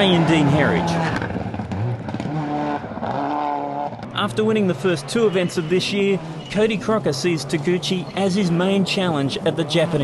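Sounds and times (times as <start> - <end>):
car engine revving hard: 0.0 - 10.0.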